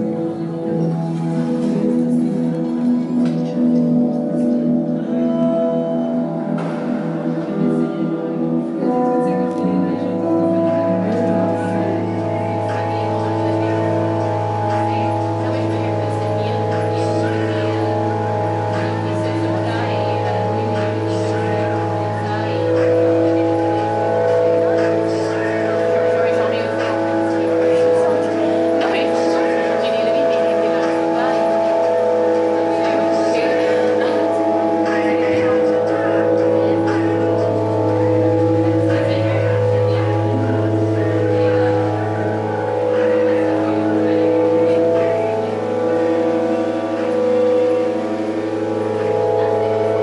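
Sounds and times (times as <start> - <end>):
steady chord drone: 0.0 - 50.0.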